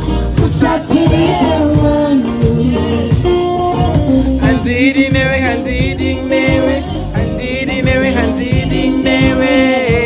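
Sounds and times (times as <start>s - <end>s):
amplified backing music with beat: 0.0s - 10.0s
woman singing into a microphone: 0.4s - 3.9s.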